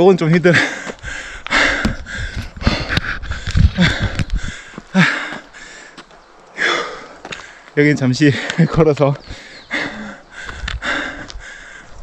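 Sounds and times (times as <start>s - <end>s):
man panting heavily: 0.4s - 12.0s.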